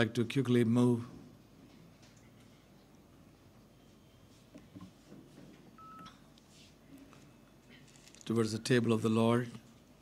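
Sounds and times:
short electronic beep: 0:05.8 - 0:06.2.

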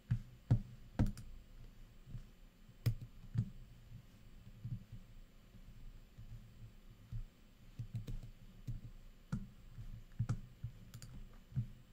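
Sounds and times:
irregular clicks and soft knocks: 0:00.0 - 0:11.9.

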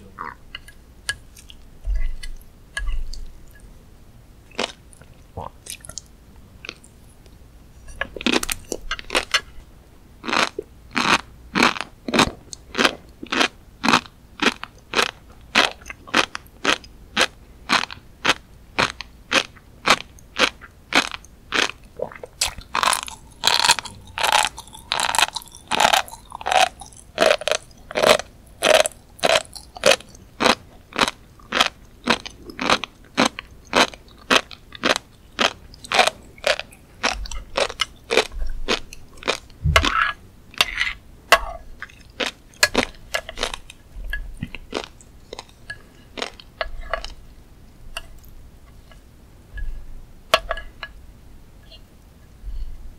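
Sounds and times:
chewing crunchy fish roe: 0:07.9 - 0:09.3, 0:10.2 - 0:41.0, 0:41.6 - 0:47.3.

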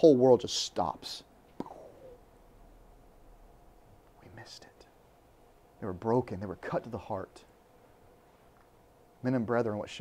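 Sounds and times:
man whispering faintly: 0:04.2 - 0:05.0.

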